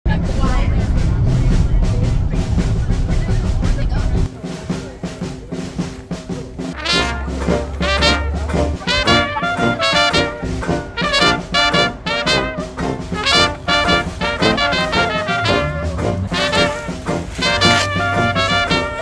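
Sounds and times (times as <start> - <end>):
drum beat: 0.1 - 19.0
brass band music: 4.3 - 19.0.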